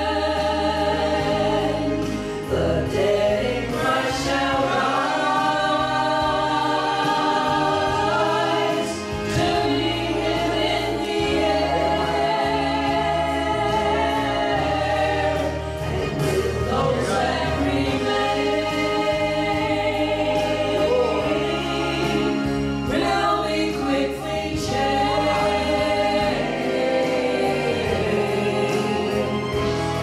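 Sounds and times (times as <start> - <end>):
instrumental accompaniment: 0.0 - 30.0
women singing gospel in harmony: 0.0 - 30.0.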